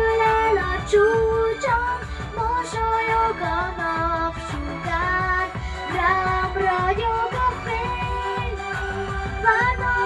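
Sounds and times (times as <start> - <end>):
backing track with steady beat: 0.0 - 10.0
girl singing into microphone: 0.0 - 10.0.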